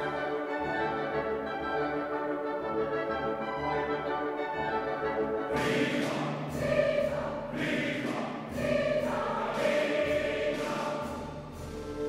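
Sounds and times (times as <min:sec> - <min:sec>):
choir singing with orchestra: 0:00.0 - 0:12.0.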